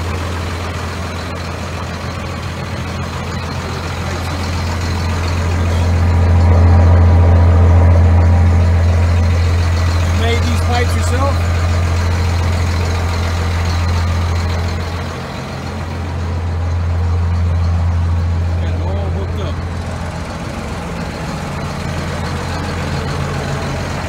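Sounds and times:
diesel engine idling: 0:00.0 - 0:24.0.

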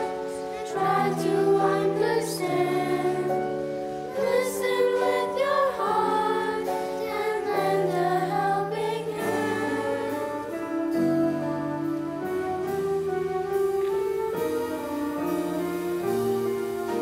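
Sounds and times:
children singing together: 0:00.0 - 0:11.2
instrumental accompaniment: 0:00.0 - 0:17.0.

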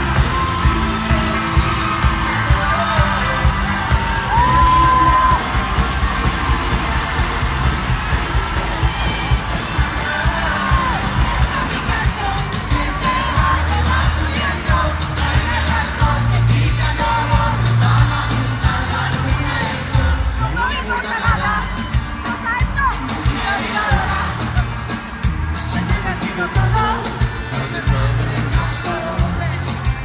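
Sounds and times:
amplified band: 0:00.0 - 0:30.0
crowd yelling: 0:00.0 - 0:30.0
drum beat: 0:00.0 - 0:30.0
person singing: 0:00.0 - 0:30.0.

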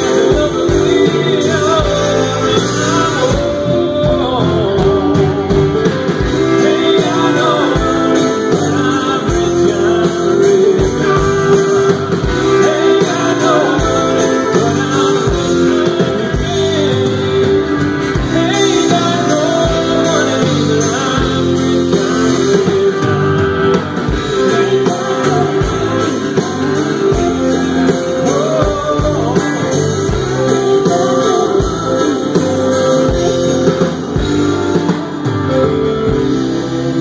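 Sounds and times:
country band playing: 0:00.0 - 0:37.0
guitar holding long notes: 0:00.0 - 0:37.0.

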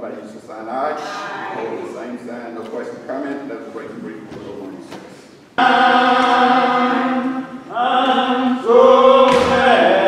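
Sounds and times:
voices singing a hymn: 0:00.9 - 0:02.4, 0:05.6 - 0:10.0.

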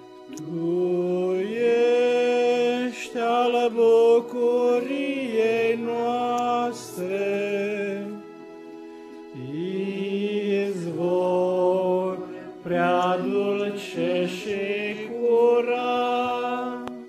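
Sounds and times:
small group singing a hymn: 0:00.3 - 0:08.4, 0:09.2 - 0:17.0.

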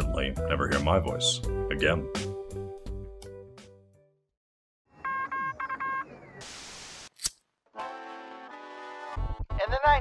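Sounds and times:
static hiss: 0:06.4 - 0:07.2.

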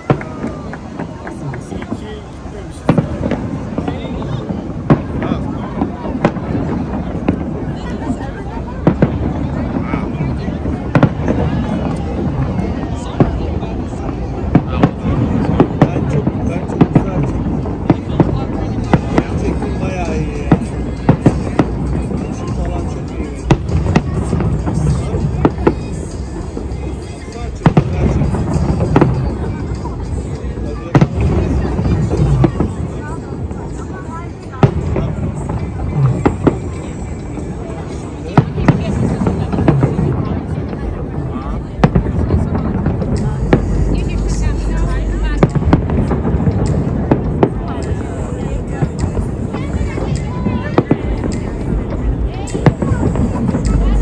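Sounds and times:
fireworks bursting with sharp bangs: 0:00.0 - 0:54.0
murmur of crowd voices: 0:00.0 - 0:54.0
low rumble: 0:34.8 - 0:54.0.

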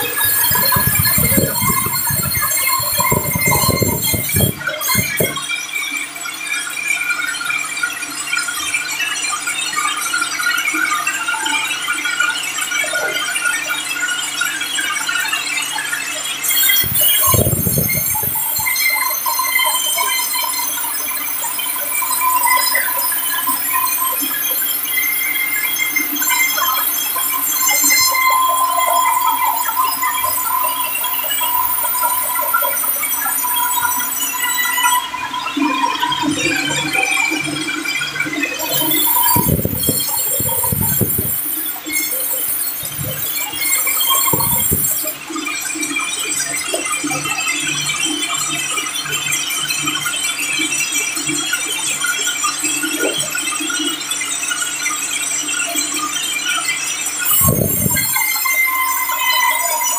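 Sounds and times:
band saw squealing whine: 0:00.0 - 0:06.2, 0:15.6 - 0:49.9, 0:57.0 - 0:59.9.

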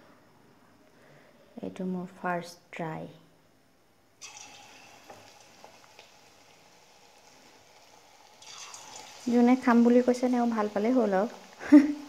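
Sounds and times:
batter sizzling in hot oil: 0:04.2 - 0:12.0.

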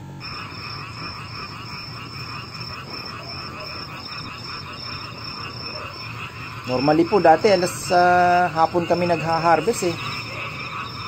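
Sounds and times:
frogs and insects chorus: 0:00.0 - 0:11.0
high pulsing trill: 0:00.0 - 0:11.0.

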